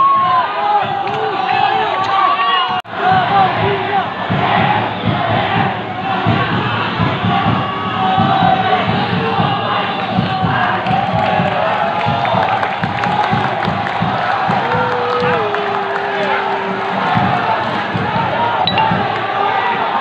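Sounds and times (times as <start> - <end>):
football crowd chanting and singing: 0.0 - 20.0.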